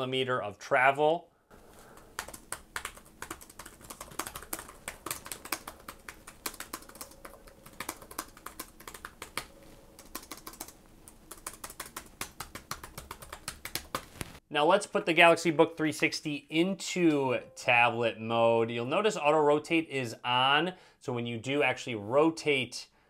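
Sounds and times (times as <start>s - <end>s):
laptop keyboard typing: 1.6s - 14.2s.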